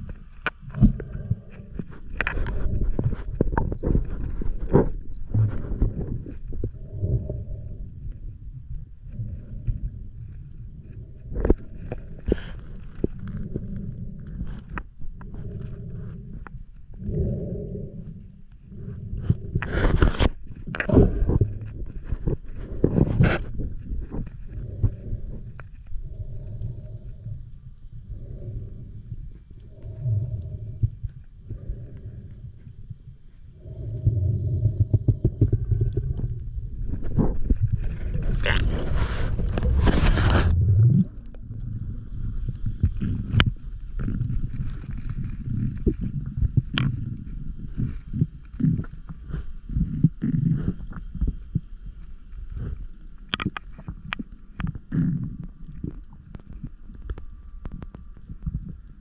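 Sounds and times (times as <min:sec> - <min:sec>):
underwater water rumble: 0:00.0 - 0:59.0.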